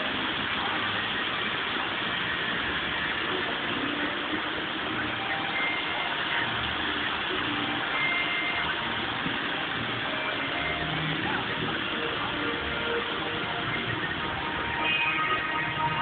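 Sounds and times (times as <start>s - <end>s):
water rushing down a wall: 0.0s - 16.0s.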